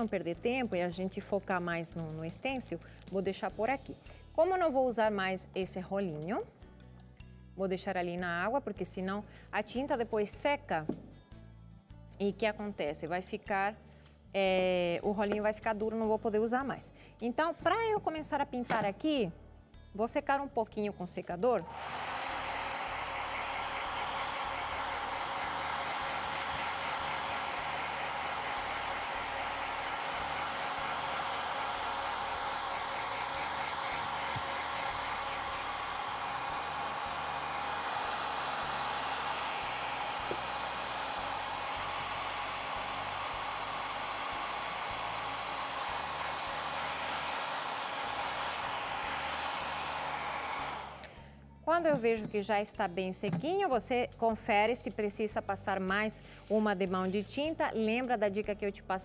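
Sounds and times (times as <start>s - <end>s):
hair dryer blowing: 21.6s - 51.3s.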